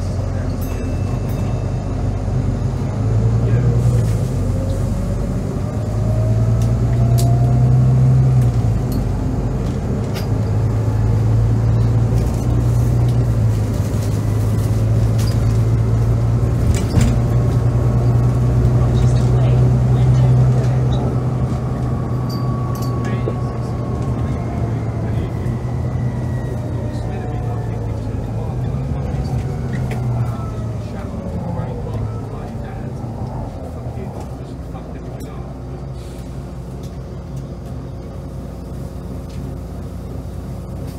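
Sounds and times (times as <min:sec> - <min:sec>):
bus engine accelerating: 0:00.0 - 0:40.9.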